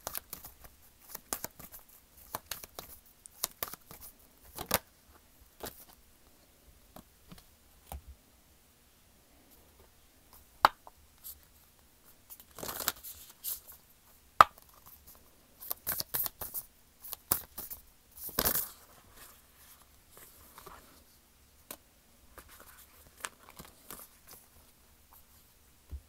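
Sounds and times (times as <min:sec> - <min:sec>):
cards shuffling and riffling: 0:00.0 - 0:04.9, 0:12.3 - 0:13.8, 0:14.5 - 0:20.9, 0:22.4 - 0:24.6.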